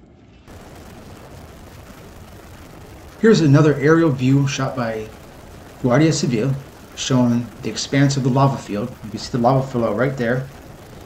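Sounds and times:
dull outdoor background: 0.0 - 11.0.

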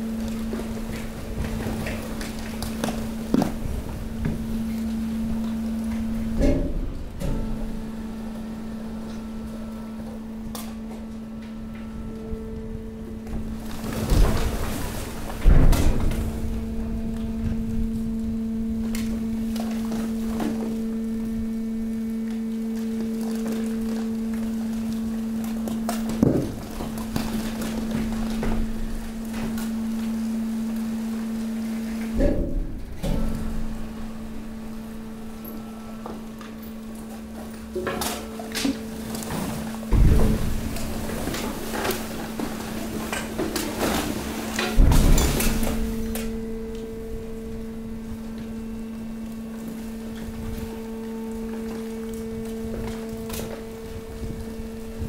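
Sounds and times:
hydraulic compactor humming: 0.0 - 55.0.

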